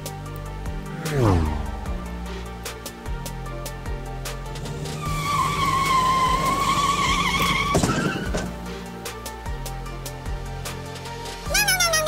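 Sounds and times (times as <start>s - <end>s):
background music: 0.0s - 12.0s
tire screech sound effect: 0.9s - 2.3s, 4.6s - 8.8s.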